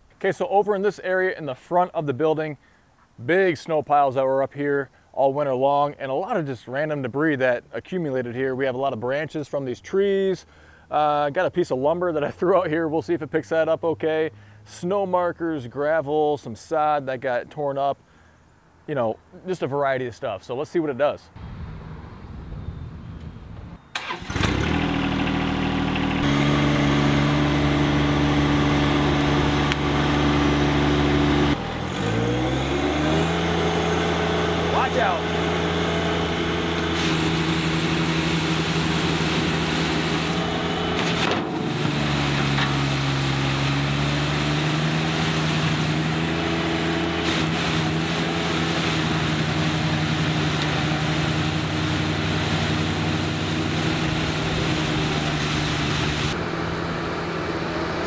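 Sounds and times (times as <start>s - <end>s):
tractor diesel engine under load: 23.9s - 58.0s
sweeper on pavement: 24.2s - 58.0s.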